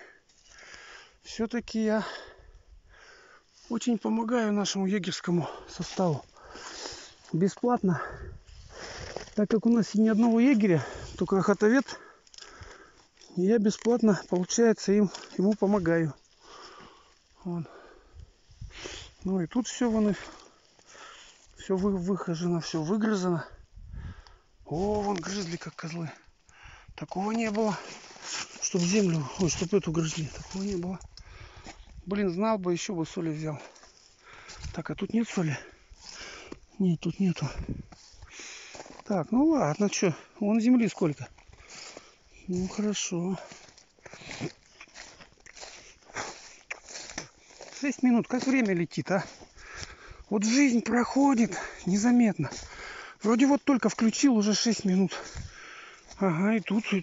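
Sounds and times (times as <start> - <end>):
footsteps crunching on ground: 3.5 - 57.0
breathy sniff: 6.3 - 7.3, 16.4 - 19.2, 20.2 - 21.6, 37.9 - 39.0.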